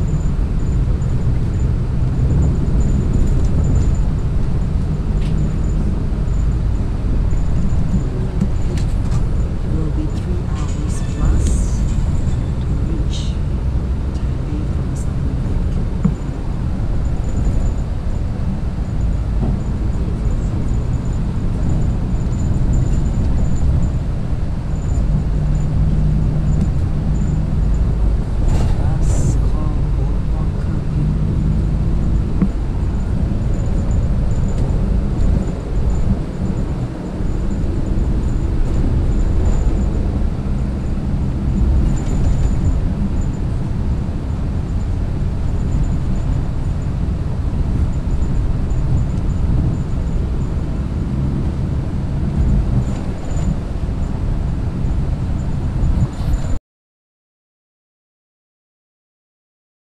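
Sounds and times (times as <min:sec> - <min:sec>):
bus engine and road rumble: 0:00.0 - 0:56.6.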